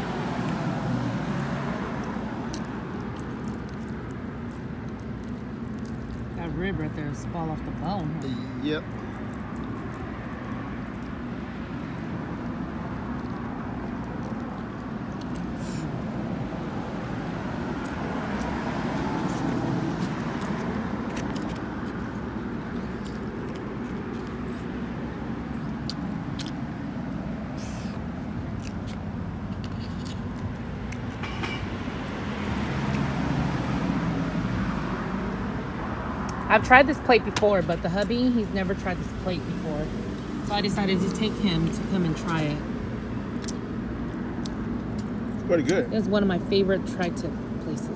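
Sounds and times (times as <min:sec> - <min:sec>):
road traffic rumble: 0:00.0 - 0:47.9.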